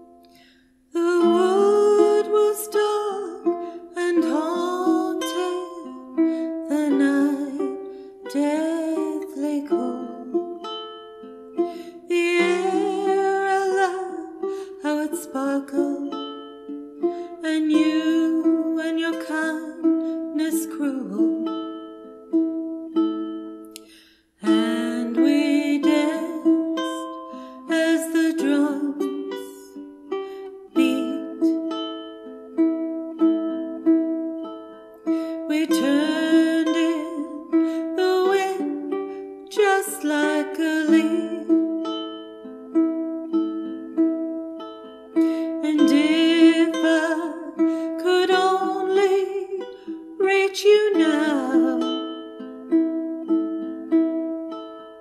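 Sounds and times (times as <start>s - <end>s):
ukulele chords: 0.0s - 55.0s
woman singing: 0.9s - 10.5s, 11.9s - 16.3s, 17.3s - 21.5s, 24.4s - 29.8s, 30.6s - 31.6s, 35.3s - 41.7s, 45.3s - 52.1s.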